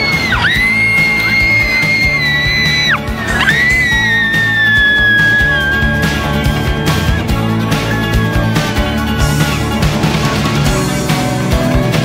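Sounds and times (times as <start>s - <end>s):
high-pitched screams: 0.0s - 8.8s
background music: 0.0s - 12.0s.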